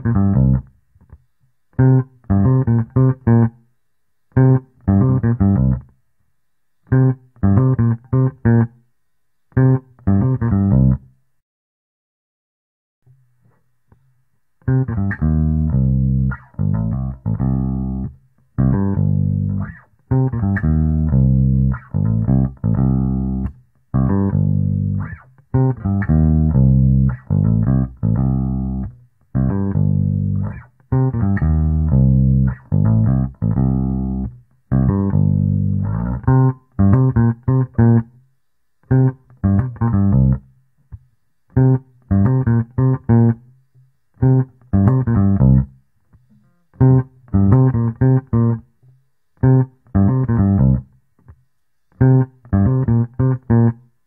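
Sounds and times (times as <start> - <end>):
plucked electric bass notes: 0.0 - 0.7, 1.8 - 3.6, 4.4 - 5.9, 6.9 - 8.7, 9.6 - 11.1, 14.6 - 38.1, 38.9 - 40.5, 41.6 - 43.4, 44.2 - 45.8, 46.8 - 48.7, 49.4 - 50.9, 52.0 - 53.8.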